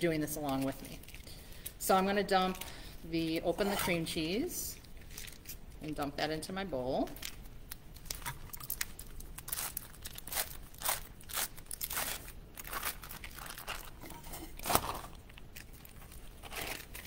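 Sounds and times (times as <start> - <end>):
foil wrapper crinkling: 4.8 - 5.8, 7.2 - 17.0.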